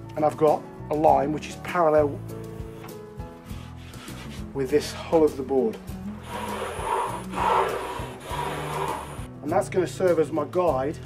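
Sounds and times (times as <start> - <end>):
pencil scraping along wood: 3.4 - 4.5, 6.2 - 9.3.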